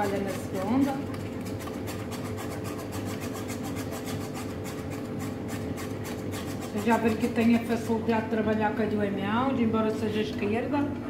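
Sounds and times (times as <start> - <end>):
wire whisk scraping a pot: 0.0 - 7.9.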